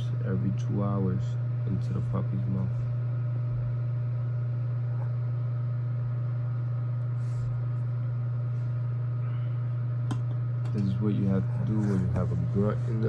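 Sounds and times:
space heater humming: 0.0s - 13.0s.

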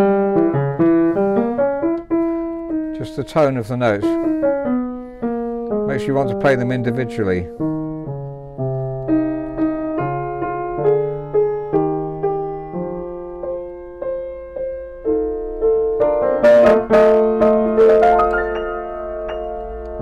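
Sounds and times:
upright piano played slowly: 0.0s - 20.0s.

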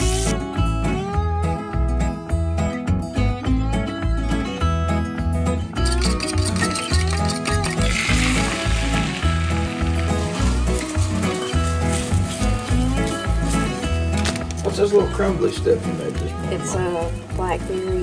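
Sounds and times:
background music with steady beat: 0.0s - 18.0s
eggs sizzling in a skillet: 6.3s - 13.0s.

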